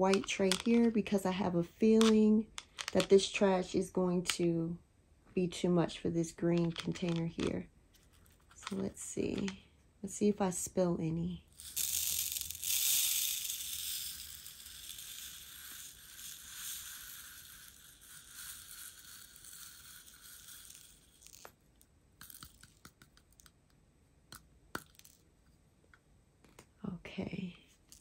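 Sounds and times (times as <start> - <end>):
plastic clicks: 0.1 - 1.0, 1.9 - 3.2, 6.5 - 7.6, 8.4 - 9.6
plastic beads pouring into tray: 11.5 - 21.5.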